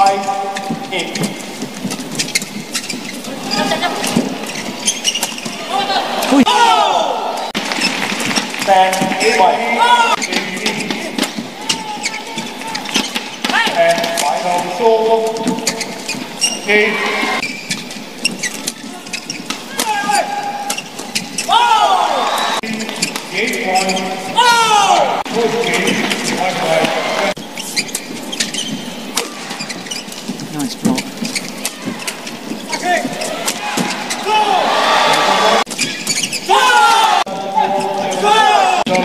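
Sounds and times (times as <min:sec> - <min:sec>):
shoes squeaking on court floor: 0:00.0 - 0:39.0
crowd noise and shouts: 0:03.2 - 0:17.5, 0:18.4 - 0:27.5, 0:28.4 - 0:39.0.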